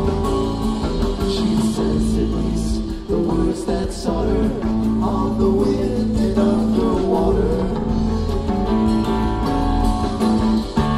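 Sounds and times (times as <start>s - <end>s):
live rock band playing: 0.0s - 10.9s.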